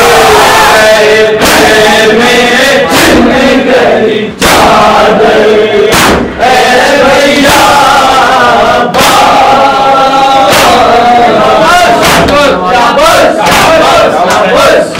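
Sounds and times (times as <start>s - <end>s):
crowd of men chanting: 0.0s - 14.9s
hands slapping on chests: 1.4s - 1.8s, 2.9s - 3.4s, 4.4s - 5.0s, 5.9s - 6.3s, 8.9s - 9.5s, 10.4s - 11.0s, 11.7s - 14.9s.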